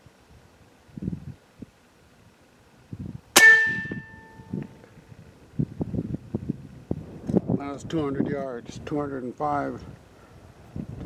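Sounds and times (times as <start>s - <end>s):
air rifle shot with metallic ring: 3.4s - 4.6s.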